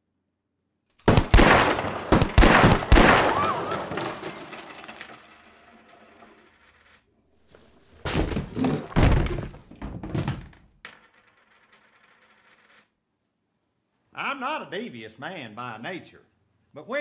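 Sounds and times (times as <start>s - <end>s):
pistol shot ringing: 1.0s - 3.9s
body and chair crashing to floor: 7.9s - 10.7s
wooden table kicked: 8.0s - 10.7s.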